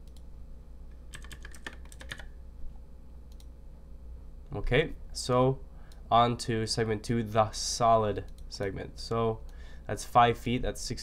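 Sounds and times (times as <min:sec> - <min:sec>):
computer keyboard typing: 0:01.1 - 0:02.3.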